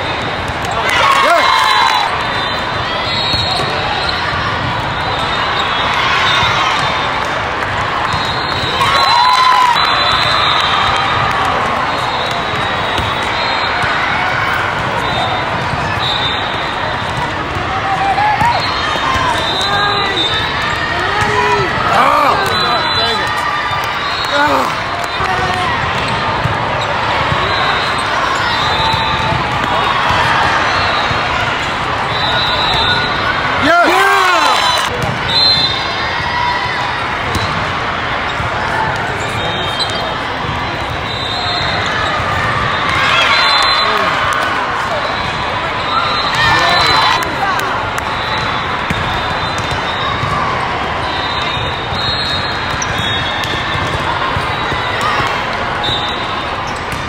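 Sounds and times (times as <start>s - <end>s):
crowd din: 0.0s - 57.0s
people shouting and cheering: 0.0s - 57.0s
volleyballs struck and bouncing: 10.2s - 22.6s, 23.3s - 31.9s, 47.9s - 57.0s.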